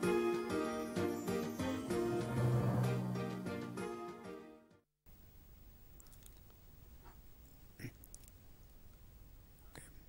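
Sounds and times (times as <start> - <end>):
low hum: 2.0 - 3.8.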